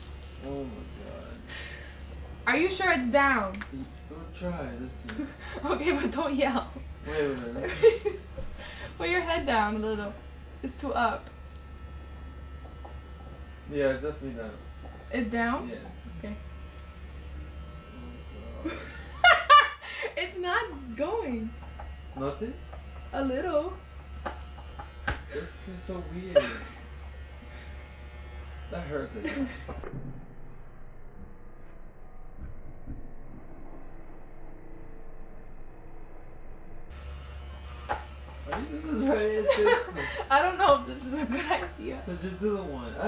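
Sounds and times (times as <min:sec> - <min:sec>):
electric hair clippers buzzing: 0:00.0 - 0:32.3, 0:36.9 - 0:43.0.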